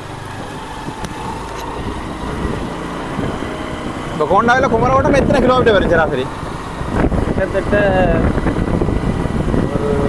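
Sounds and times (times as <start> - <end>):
road and wind noise: 0.0 - 10.0
scooter engine running: 0.0 - 10.0.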